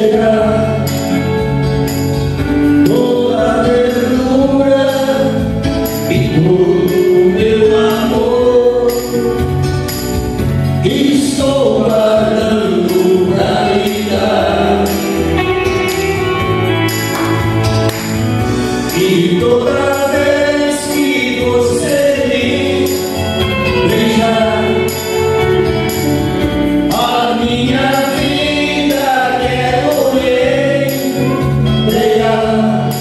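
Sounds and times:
men singing together: 0.0s - 1.4s, 2.6s - 9.6s, 10.8s - 15.5s, 18.6s - 25.8s, 26.4s - 33.0s
electronic keyboard: 0.0s - 33.0s
choir-like voices: 18.9s - 25.8s, 26.4s - 33.0s.

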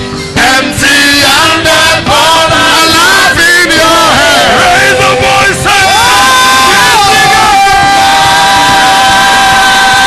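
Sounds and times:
congregation noise: 0.4s - 10.0s.

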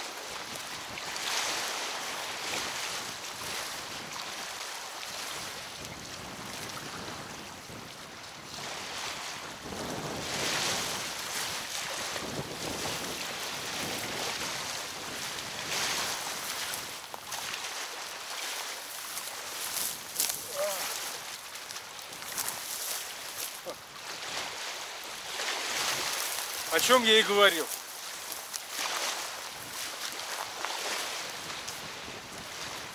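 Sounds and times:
river waves washing against bank: 0.0s - 32.9s
gusty wind buffeting microphone: 9.4s - 17.0s, 30.8s - 32.9s.

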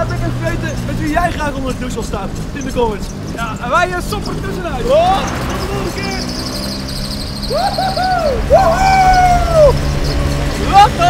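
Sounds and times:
scooter engine running: 0.0s - 11.0s
man whooping: 7.4s - 9.9s.

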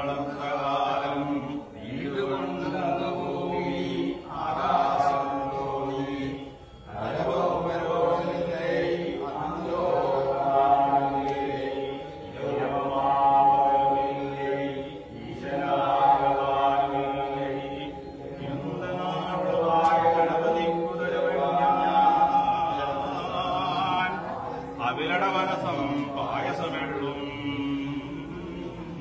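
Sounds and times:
men and boys singing in unison: 0.0s - 29.0s.

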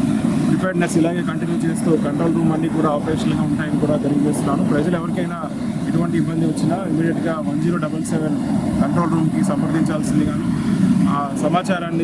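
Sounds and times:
steady low rumble: 0.0s - 12.0s
man speaking: 0.5s - 12.0s.

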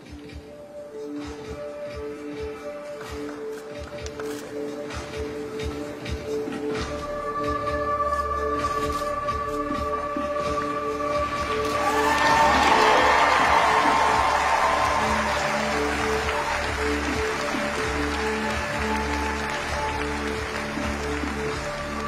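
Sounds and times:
background music with sustained notes: 0.0s - 22.0s
audience applause: 11.6s - 22.0s.

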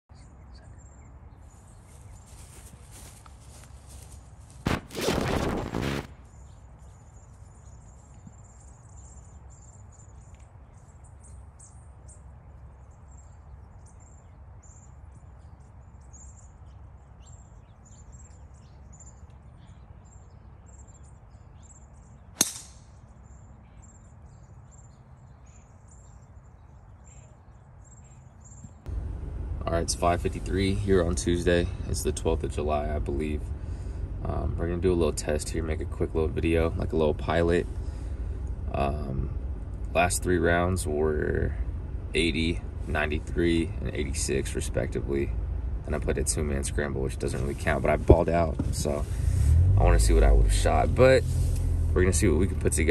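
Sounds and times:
small birds chirping: 0.0s - 4.6s, 6.1s - 29.0s
rush of noise: 4.7s - 6.2s
golf club striking ball: 22.4s - 23.0s.

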